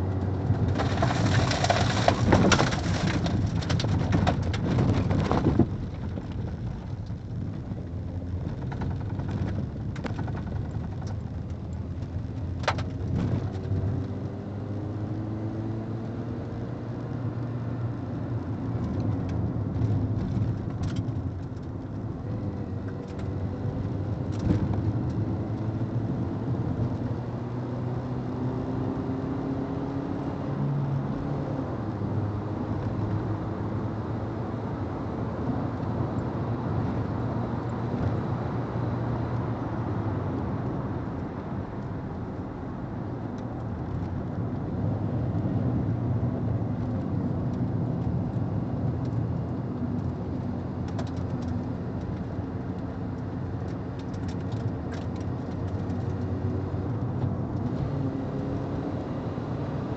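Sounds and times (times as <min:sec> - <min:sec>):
wind and tyre noise: 0:00.0 - 0:59.9.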